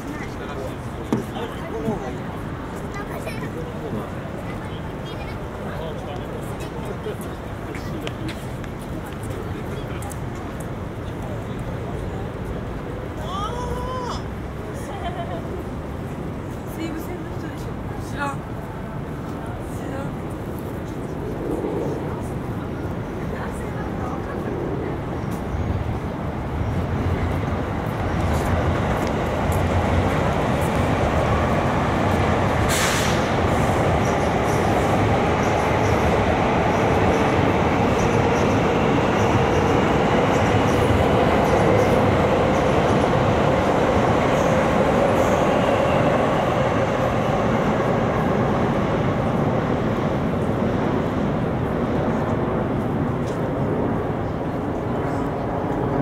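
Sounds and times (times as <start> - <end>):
train wheels rumbling: 19.5 - 56.0.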